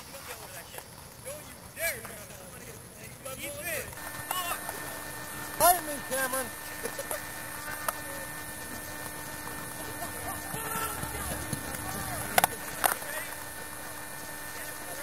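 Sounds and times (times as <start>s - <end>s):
players calling out: 4.0s - 15.0s.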